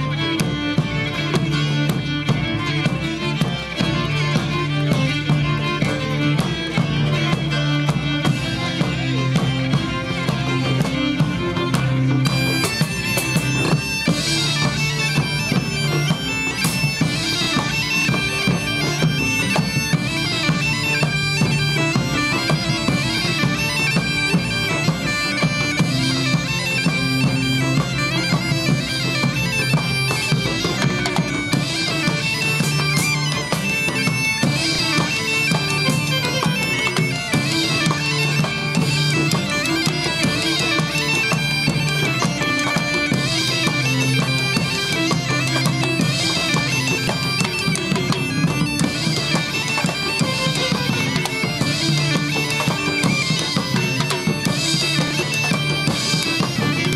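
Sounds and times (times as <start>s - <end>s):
bagpipe melody with drone: 0.0s - 56.9s
drum beating time: 0.0s - 56.9s.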